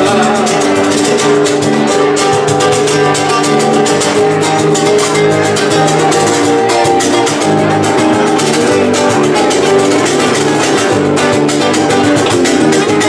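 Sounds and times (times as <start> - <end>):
bass guitar: 0.0 - 13.0
drums: 0.0 - 13.0
guitar strummed fast: 0.0 - 13.0
rumba band music: 0.0 - 13.0.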